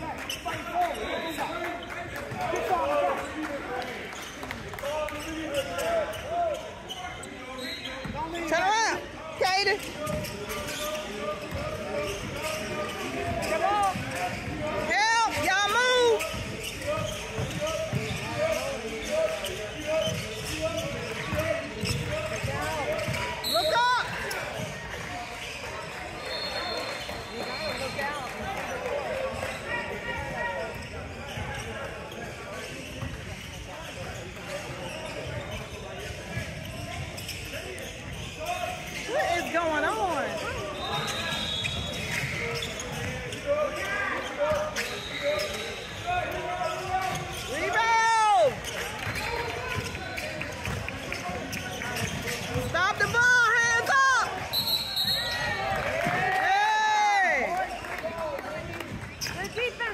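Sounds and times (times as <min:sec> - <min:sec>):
players' voices echoing: 0:00.0 - 0:59.9
sneakers squeaking: 0:00.0 - 0:59.9.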